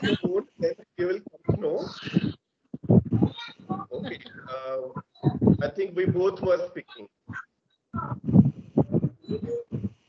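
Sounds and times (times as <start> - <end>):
muffled speech over video call: 0.0 - 7.4, 8.0 - 9.9.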